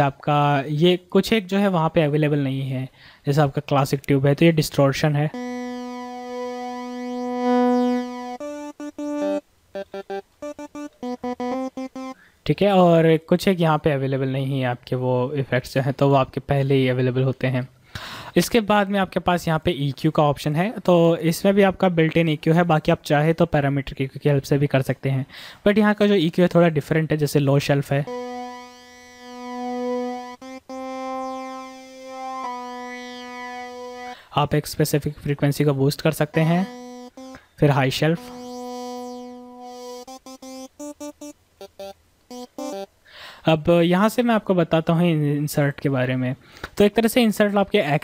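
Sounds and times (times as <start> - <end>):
distorted synthesizer note: 5.4 - 12.2, 28.0 - 34.2, 36.3 - 42.9.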